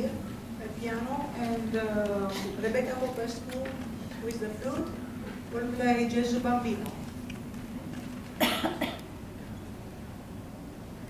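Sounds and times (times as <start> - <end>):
person coughing: 2.3 - 2.6, 8.4 - 9.1.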